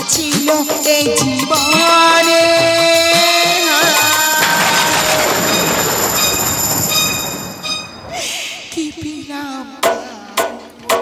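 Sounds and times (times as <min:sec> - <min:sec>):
woman singing: 0:00.0 - 0:05.7, 0:08.2 - 0:11.0
steady high whistling tones: 0:00.4 - 0:09.0.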